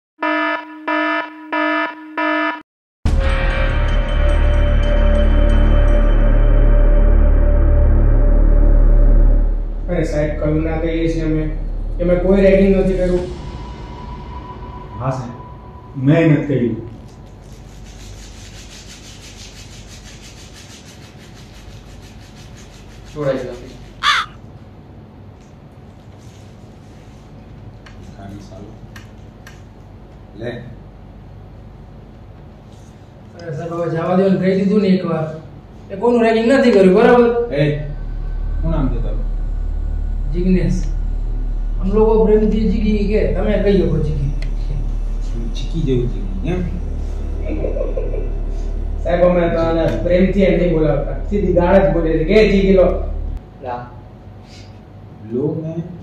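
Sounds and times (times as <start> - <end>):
electronic alarm beeping: 0.2 - 2.6
crow cawing: 24.0 - 24.4.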